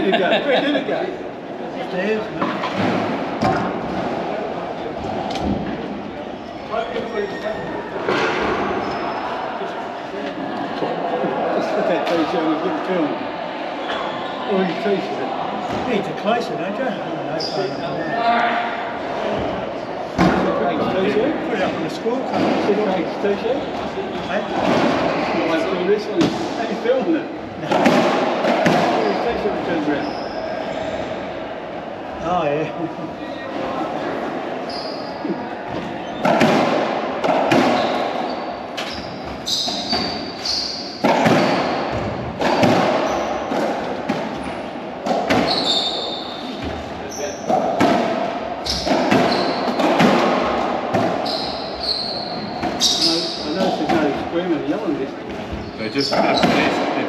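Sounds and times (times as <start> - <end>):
ball smacking racquets and walls: 27.7 - 29.4, 35.7 - 46.0, 46.6 - 54.3, 55.3 - 56.9
shoes squeaking on wooden floor: 37.2 - 43.6, 44.3 - 47.8, 48.6 - 50.2, 51.0 - 54.1, 55.3 - 56.8.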